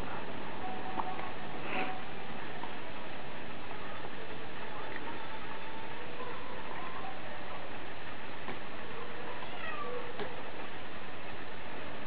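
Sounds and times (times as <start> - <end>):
steady background hiss: 0.0 - 12.0
cat meowing: 9.3 - 10.2.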